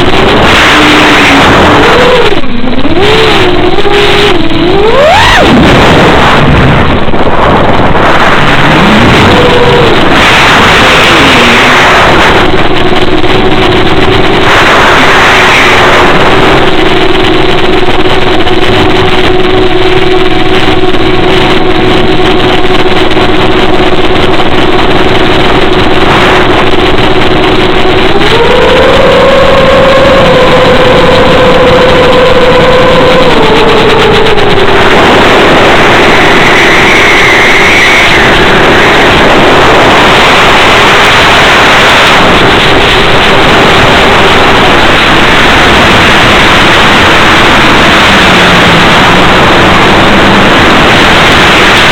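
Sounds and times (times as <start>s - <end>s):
electric motor and propeller whine: 0.0s - 51.9s
loud wind rush: 0.0s - 51.9s.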